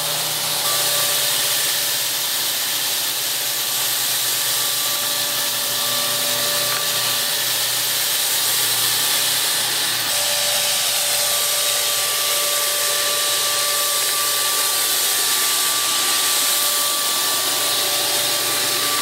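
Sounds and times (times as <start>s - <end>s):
fogger motor whine: 0.0s - 19.0s
mist hissing: 0.0s - 19.0s.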